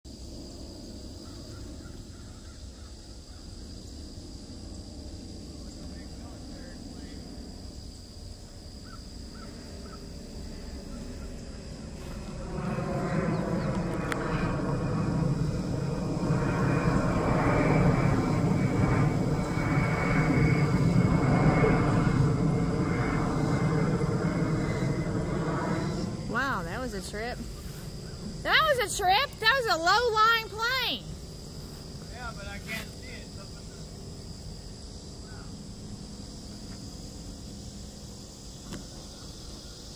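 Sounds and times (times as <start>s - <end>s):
jet flying overhead: 0.1s - 39.9s.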